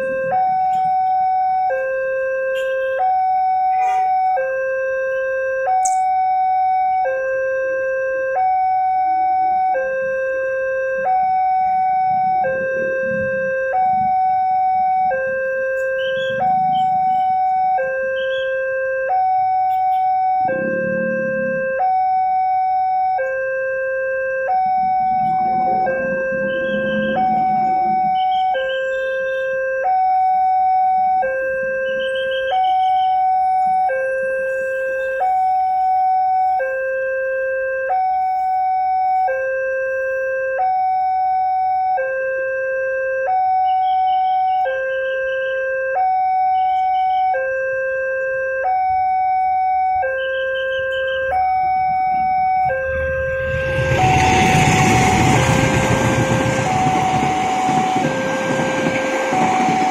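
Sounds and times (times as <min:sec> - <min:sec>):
two-tone crossing alarm: 0:00.0 - 0:59.9
passing train rumble: 0:11.2 - 0:17.8, 0:19.4 - 0:23.1, 0:24.2 - 0:29.5, 0:51.3 - 0:59.9.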